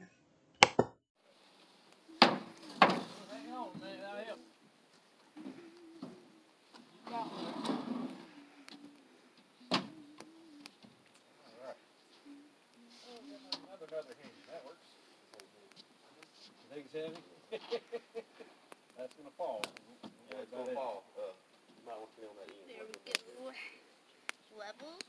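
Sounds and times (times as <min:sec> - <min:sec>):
sharp knocks on wood: 0:02.2 - 0:03.1
people talking: 0:03.0 - 0:04.5, 0:11.5 - 0:18.0, 0:19.0 - 0:23.8, 0:24.5 - 0:25.0.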